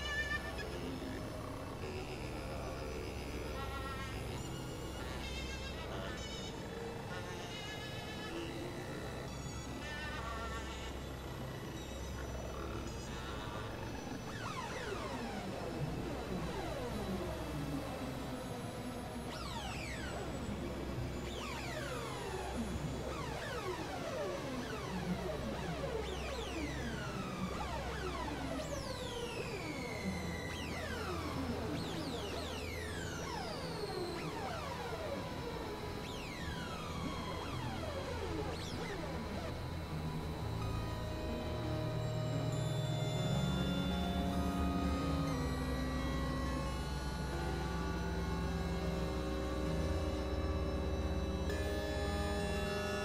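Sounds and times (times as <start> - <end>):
low synthesizer drone: 8.3 - 53.0.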